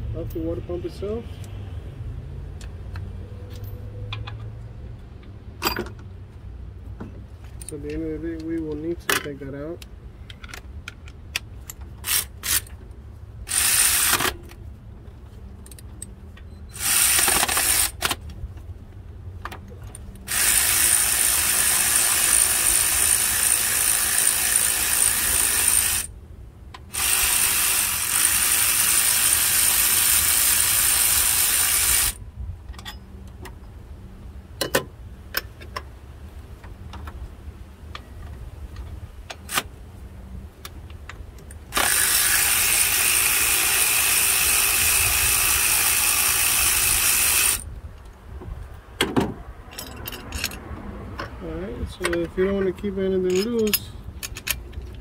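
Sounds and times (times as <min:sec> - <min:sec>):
ratchet wrench turning: 0:13.5 - 0:14.4, 0:16.7 - 0:18.1, 0:20.2 - 0:26.1, 0:27.0 - 0:32.2, 0:41.8 - 0:47.6.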